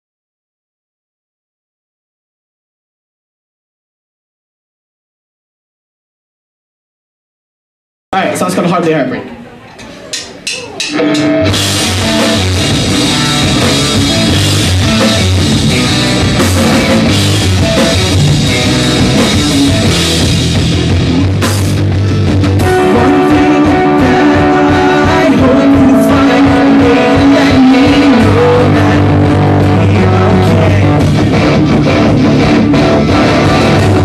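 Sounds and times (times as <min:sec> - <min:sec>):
live rock band playing: 0:09.9 - 0:34.0.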